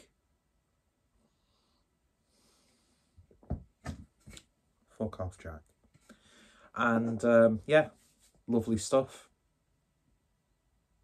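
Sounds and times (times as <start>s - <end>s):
soft breath out: 1.2s - 3.3s, 6.0s - 6.7s.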